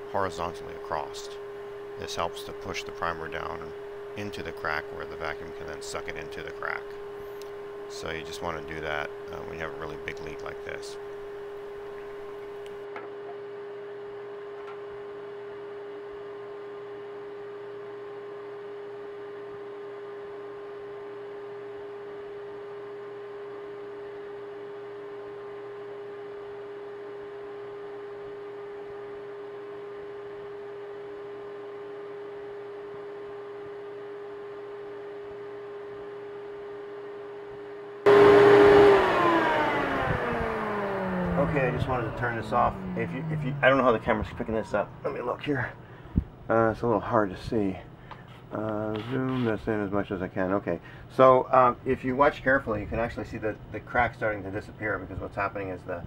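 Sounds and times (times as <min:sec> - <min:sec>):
vacuum cleaner motor humming: 0:00.0 - 0:12.8, 0:38.1 - 0:45.7
vacuum motor spinning down: 0:00.0 - 0:14.0, 0:38.0 - 0:45.8.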